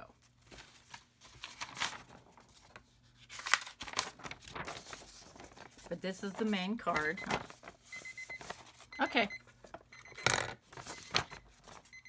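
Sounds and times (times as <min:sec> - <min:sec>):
paper rustling: 0:00.2 - 0:09.9, 0:10.6 - 0:12.0
timer alarm beeping: 0:07.9 - 0:12.0.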